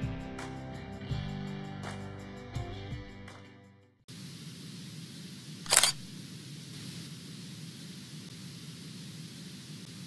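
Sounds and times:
low hum and hiss: 4.1 - 10.0.

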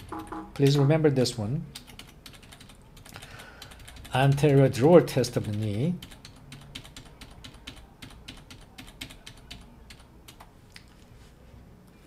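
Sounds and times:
computer keys typing: 0.0 - 0.8, 1.7 - 10.5.

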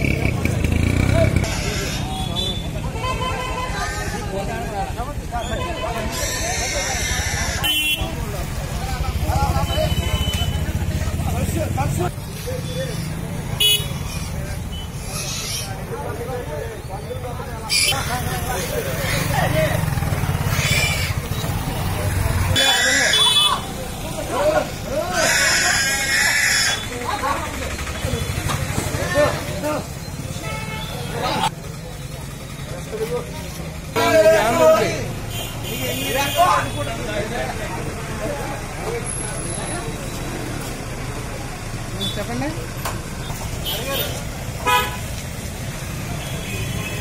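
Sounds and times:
people talking: 0.0 - 44.8
people's voices: 0.0 - 47.0
lorry engine idling: 26.7 - 30.2.

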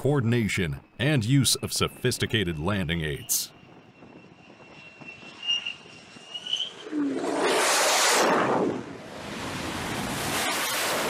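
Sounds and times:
jet engine high whine: 0.0 - 11.0.

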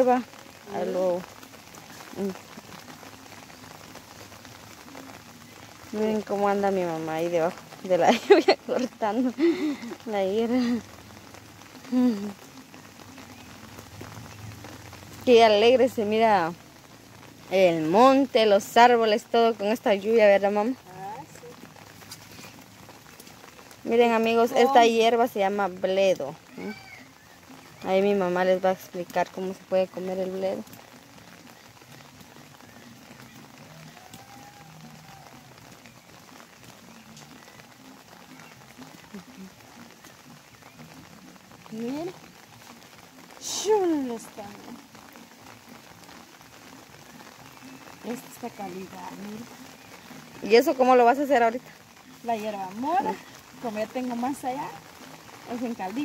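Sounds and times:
person's voice: 0.0 - 1.2, 2.1 - 2.6, 11.9 - 12.4, 23.9 - 26.7, 43.4 - 44.6
rain falling on leafy plants: 0.0 - 56.0.

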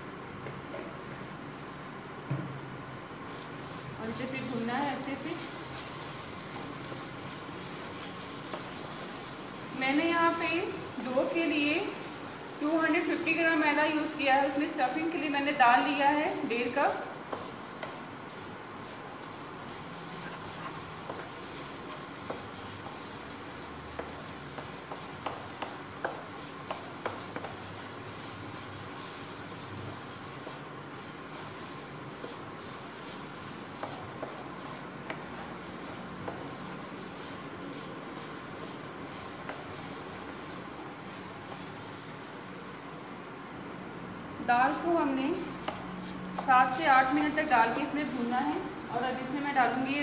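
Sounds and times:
paste sizzling in oil: 3.0 - 50.0
spatula scraping pan: 16.3 - 42.1, 44.7 - 49.8
light spatula ticks: 17.2 - 18.3, 19.2 - 29.4, 30.0 - 43.4, 44.7 - 49.4.

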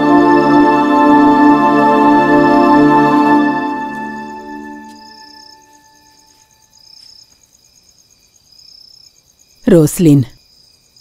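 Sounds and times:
low organ music: 0.0 - 6.7
crickets chirping: 0.0 - 11.0
person speaking: 9.6 - 10.4.

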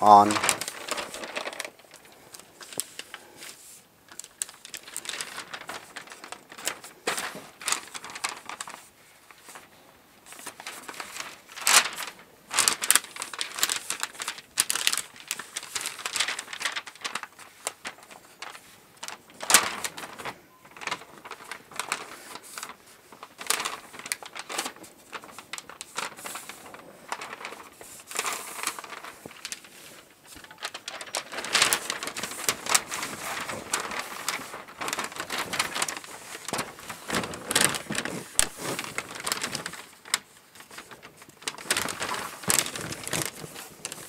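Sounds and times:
paper rustling and crinkling: 0.0 - 44.0.

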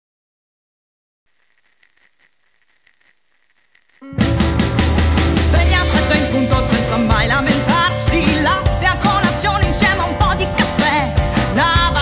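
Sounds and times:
faint hiss: 1.3 - 4.1.

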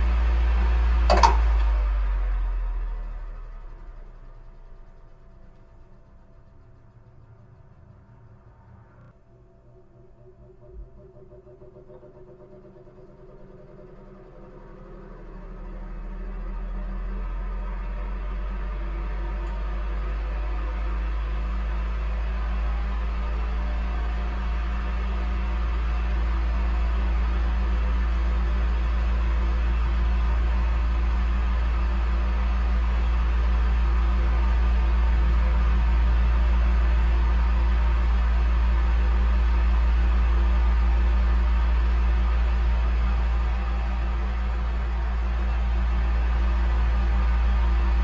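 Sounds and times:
electric fan running: 0.0 - 48.0.

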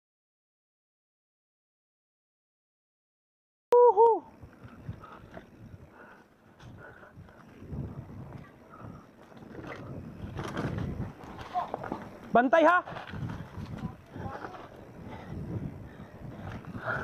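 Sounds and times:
bike tyres on dirt: 3.8 - 17.0
bike rattling: 4.2 - 17.0
wind on microphone: 4.2 - 17.0.

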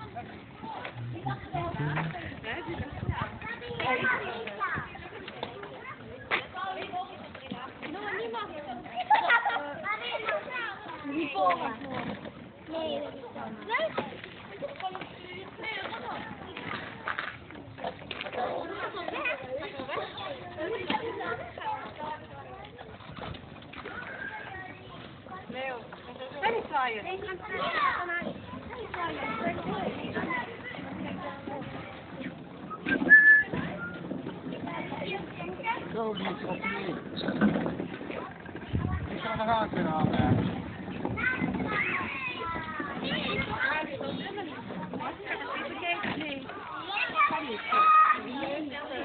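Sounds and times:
children chattering and calling: 0.0 - 49.0
distant voices talking: 0.0 - 49.0.

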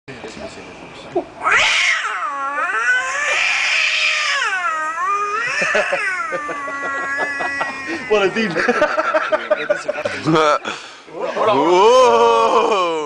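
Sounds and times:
man imitating cat yowl: 1.5 - 8.5, 11.4 - 13.0
laughter: 5.4 - 10.6.

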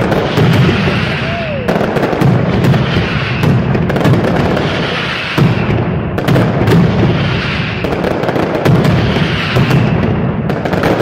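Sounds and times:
firecracker barrage: 0.0 - 11.0.

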